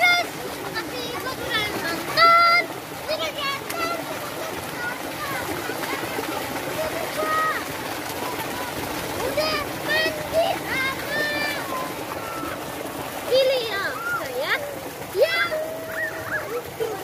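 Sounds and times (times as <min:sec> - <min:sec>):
children shouting: 0:00.0 - 0:17.0
splashing in water: 0:00.0 - 0:17.0
steady water wash: 0:00.0 - 0:17.0.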